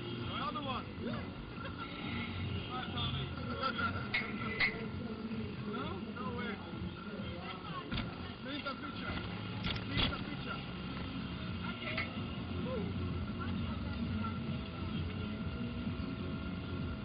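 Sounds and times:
faint background music: 0.0s - 17.0s
indistinct voices: 0.0s - 17.0s.

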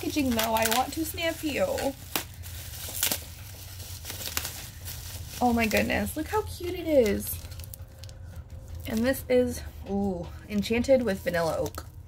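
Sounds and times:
plastic wrapping crinkling: 0.0s - 9.5s, 10.5s - 12.0s.

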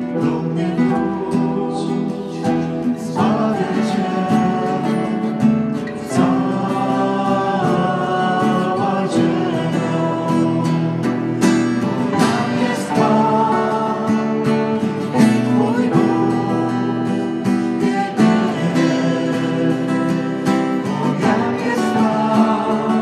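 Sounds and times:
guitar accompaniment: 0.0s - 23.0s
voices singing: 0.0s - 23.0s.

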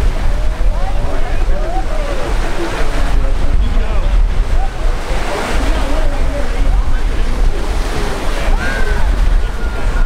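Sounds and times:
surf washing onto beach: 0.0s - 10.0s
wind buffeting microphone: 0.0s - 10.0s.

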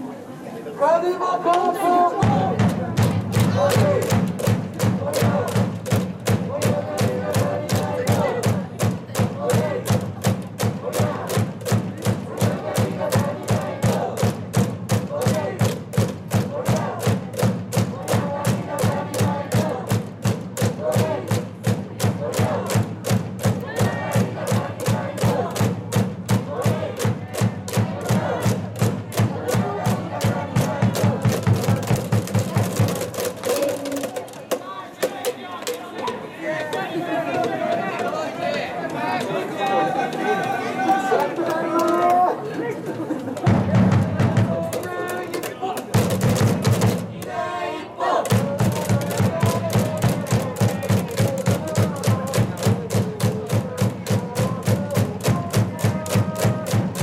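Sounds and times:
crowd chanting a cheer: 0.8s - 57.0s
fast steady struck beat: 2.2s - 36.8s, 43.4s - 47.6s, 48.2s - 57.0s.

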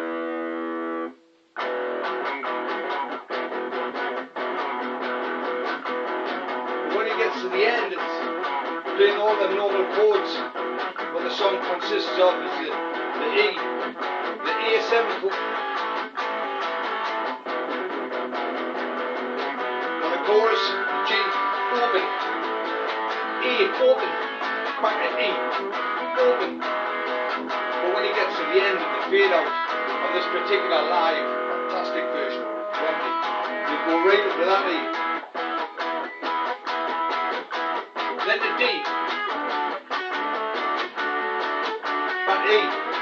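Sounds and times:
electric guitar strummed: 0.0s - 43.0s.

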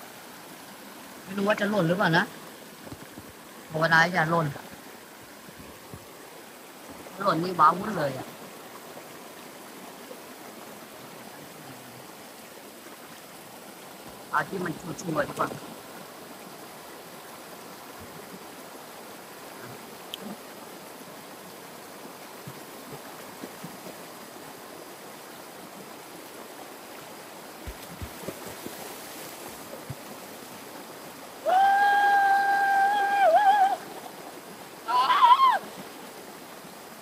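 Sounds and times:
stream rushing over rocks: 0.0s - 37.0s.

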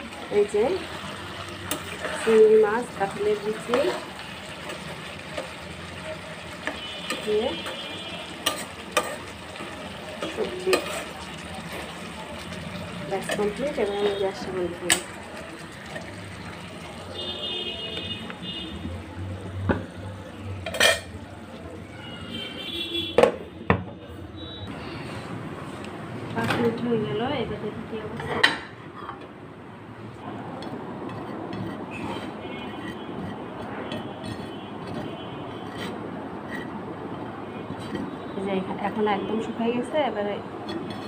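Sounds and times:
plate and cookware clinking: 8.4s - 11.9s, 20.6s - 21.2s.

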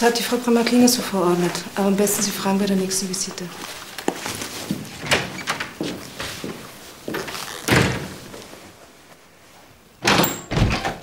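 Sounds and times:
wooden door opening: 4.7s - 6.3s, 7.1s - 8.3s, 10.0s - 11.0s
loud door clunks: 7.7s - 8.2s, 10.0s - 11.0s.

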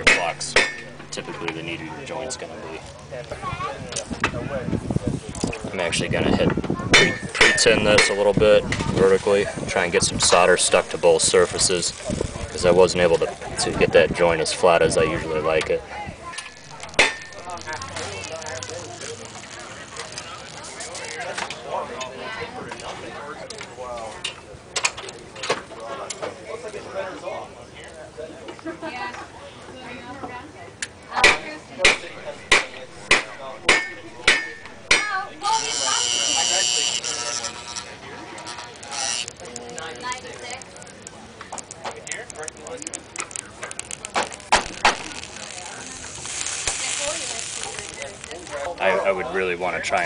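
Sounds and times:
sharp metallic knocks: 0.0s - 1.4s, 6.9s - 8.3s, 16.4s - 17.5s, 31.2s - 35.2s
faint background voices: 0.0s - 50.0s
solder hissing on copper: 31.8s - 40.1s, 43.7s - 49.0s.

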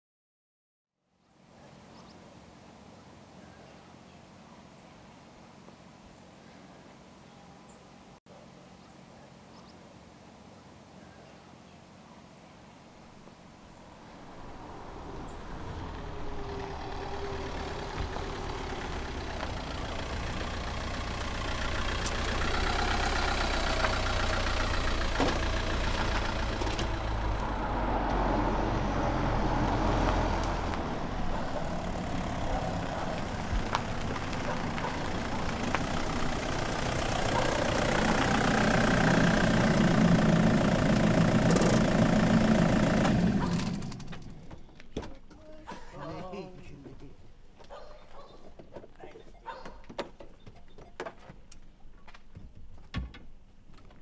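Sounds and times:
car engine running: 13.2s - 45.2s.

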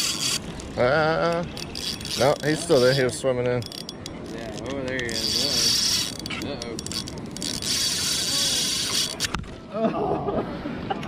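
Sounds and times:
fishing reel whirring and clicking: 0.0s - 9.4s.

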